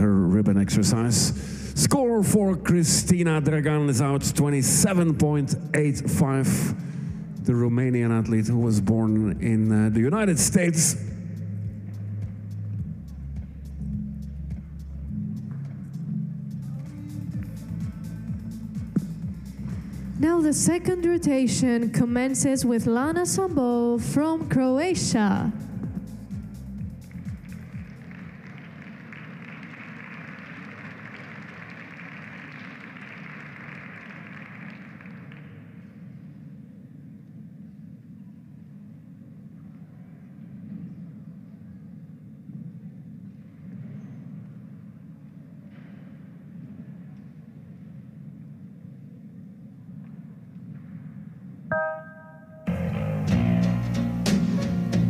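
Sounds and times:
low arena hum: 0.0s - 55.0s
routine music: 51.7s - 55.0s.

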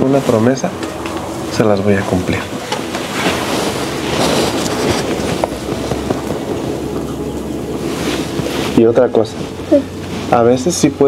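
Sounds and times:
clothing rustling and rubbing: 2.3s - 11.0s.

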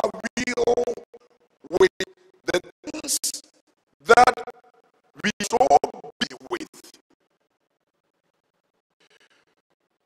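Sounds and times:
man speaking into a microphone: 0.0s - 1.0s, 1.6s - 4.4s, 5.2s - 7.0s
faint room sound: 6.2s - 10.0s.

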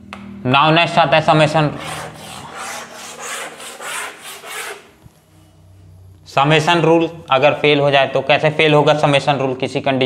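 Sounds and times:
board eraser rubbing: 1.8s - 5.0s.

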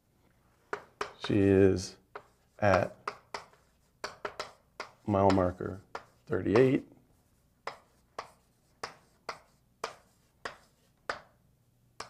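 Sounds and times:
chalk ticking and scraping on blackboard: 0.6s - 12.0s.

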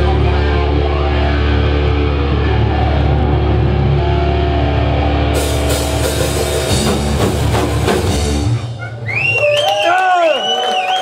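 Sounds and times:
heavy metal band playing: 0.0s - 9.2s.

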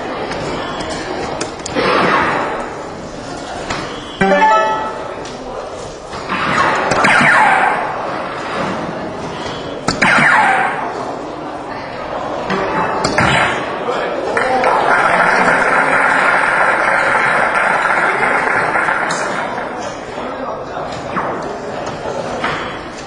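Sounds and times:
darts striking electronic dartboard: 4.2s - 5.2s, 6.4s - 8.0s, 9.9s - 10.9s
crowd cheering: 14.2s - 19.5s.

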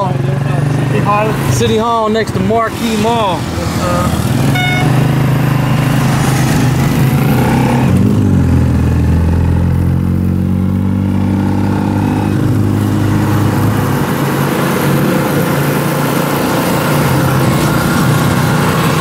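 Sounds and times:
motorcycle engine running: 8.0s - 19.0s.

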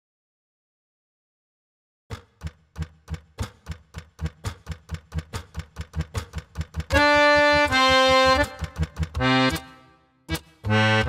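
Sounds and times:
sharp knocks with dull thuds: 2.1s - 9.6s.

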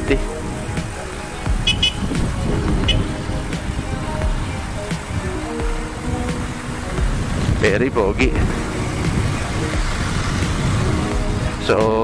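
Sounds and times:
background music: 0.0s - 12.0s
motorcycle engine rumble: 0.0s - 12.0s
wind on microphone: 0.0s - 12.0s.

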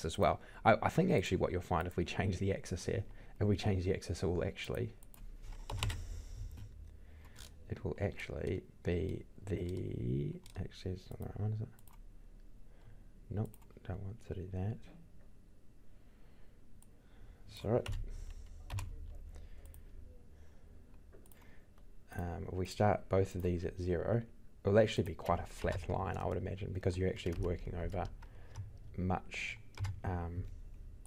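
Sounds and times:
low steady hum: 0.0s - 31.0s
computer keyboard keystrokes: 5.0s - 6.7s, 17.8s - 18.1s, 18.7s - 19.8s, 27.1s - 28.9s, 29.6s - 30.1s.

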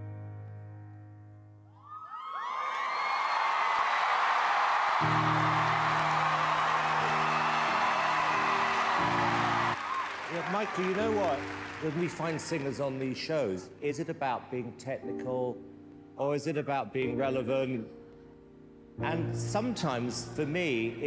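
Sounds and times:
audience cheering and applauding: 1.8s - 13.6s
background music: 4.6s - 21.0s
song ending: 5.0s - 9.8s
man speaking: 10.3s - 15.6s.

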